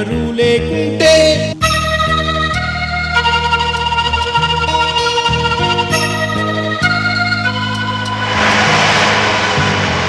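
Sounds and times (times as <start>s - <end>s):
low held synth tone: 6.1s - 10.0s
whoosh transition effect: 8.0s - 10.0s.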